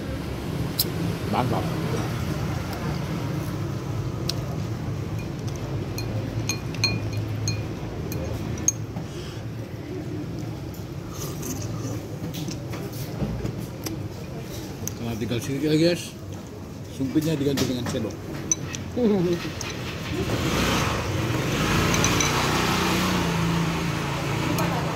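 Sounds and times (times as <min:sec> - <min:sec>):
low background noise: 0:00.0 - 0:24.9
chopsticks clinking on ceramic bowl: 0:05.2 - 0:08.9, 0:17.9 - 0:19.8, 0:21.8 - 0:22.7.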